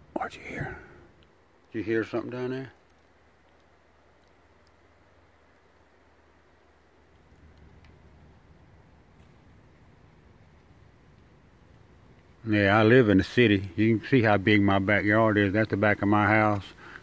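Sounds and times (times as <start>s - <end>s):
low rustle: 0.0s - 17.0s.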